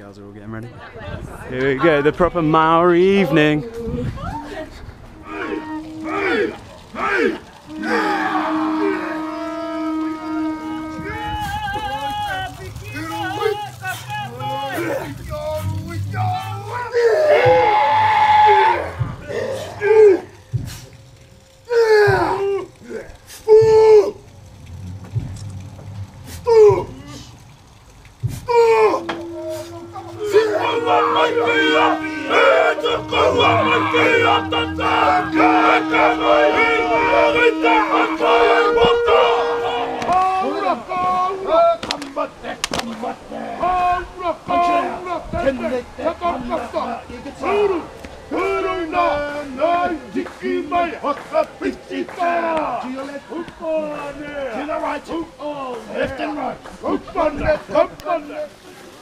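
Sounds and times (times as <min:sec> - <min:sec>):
voices calling out: 0:00.7 - 0:59.0
men chanting and shouting: 0:01.6 - 0:20.6, 0:28.4 - 0:59.0
horn blown in long note: 0:04.4 - 0:27.5, 0:28.3 - 0:41.2.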